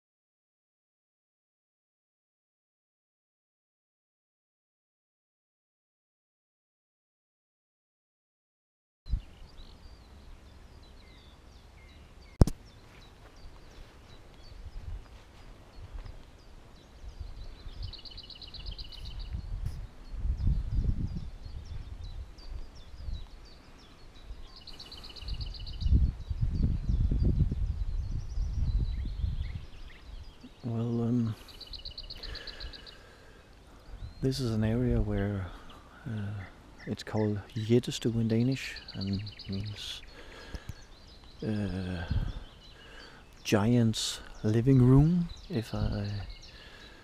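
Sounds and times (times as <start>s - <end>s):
sharp click: 12.4s - 12.6s
wind buffeting microphone: 13.4s - 30.5s, 40.6s - 42.7s.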